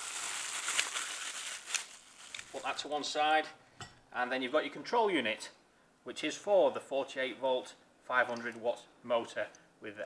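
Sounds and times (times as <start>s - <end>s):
plastic bag crinkling: 0.0s - 2.9s.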